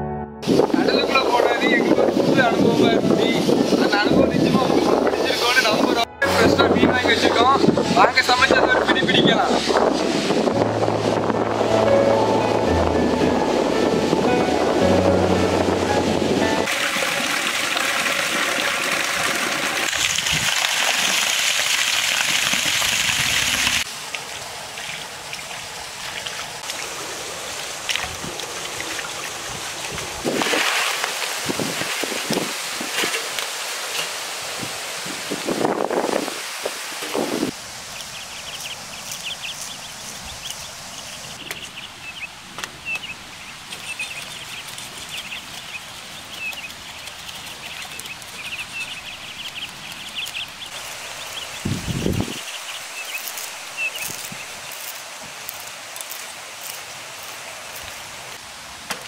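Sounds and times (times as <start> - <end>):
rushing water: 0.4 - 59.0
water splashing and sloshing: 9.4 - 41.0, 42.5 - 59.0.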